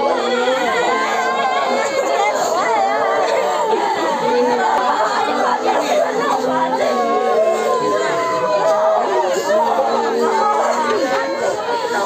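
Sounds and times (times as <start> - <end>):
people wailing and sobbing: 0.0 - 12.0.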